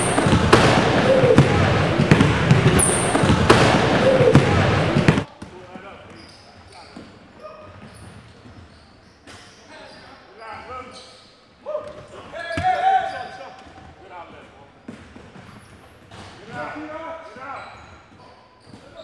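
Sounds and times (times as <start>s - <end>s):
basketball bouncing on court: 0.0s - 5.6s
players' voices: 0.0s - 7.8s
loud shout: 11.7s - 13.4s.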